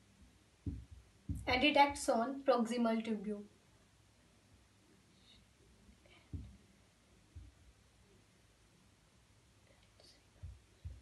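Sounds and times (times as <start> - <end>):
marker pen on writing board: 0.6 - 2.0, 6.1 - 6.6
soft low thumps: 0.6 - 2.1, 6.1 - 6.6, 7.3 - 7.8, 10.3 - 11.0.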